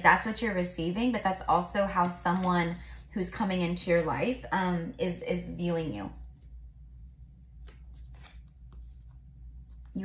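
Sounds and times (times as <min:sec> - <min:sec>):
low steady hum: 0:00.0 - 0:10.0
cards sliding and rustling: 0:06.2 - 0:09.9.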